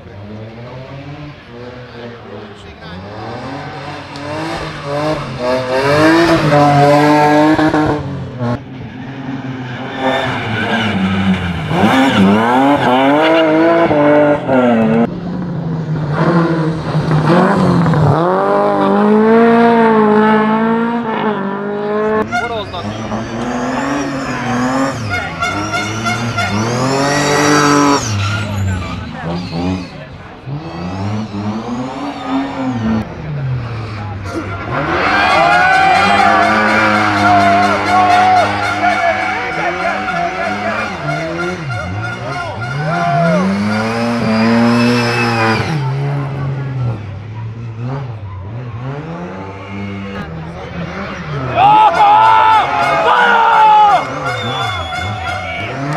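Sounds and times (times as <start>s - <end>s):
rally car engines revving: 0.0s - 55.9s.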